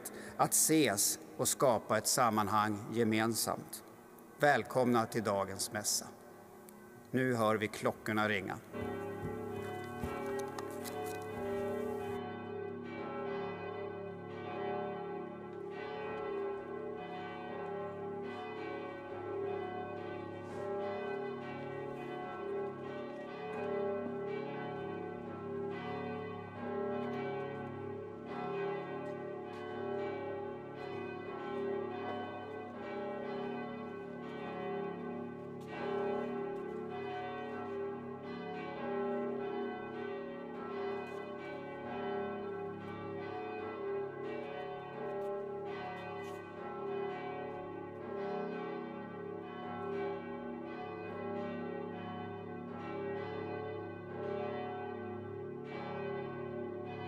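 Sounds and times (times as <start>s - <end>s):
church bells ringing: 0.0s - 57.0s.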